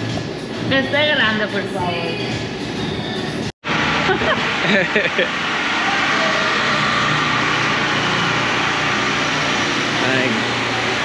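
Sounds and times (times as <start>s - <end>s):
street hum and hiss: 3.7s - 11.0s.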